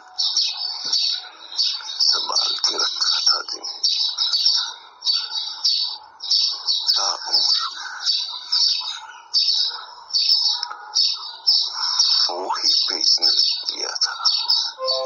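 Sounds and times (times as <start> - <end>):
birds chirping in high bursts: 0.0 - 15.0
low chattering bird calls: 0.0 - 15.0.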